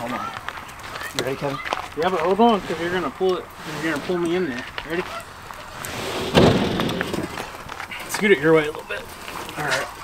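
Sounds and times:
heavy thud on grill grate: 6.2s - 7.5s.

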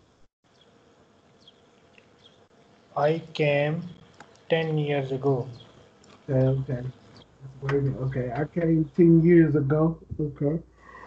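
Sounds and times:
low steady hiss: 1.4s - 11.0s.

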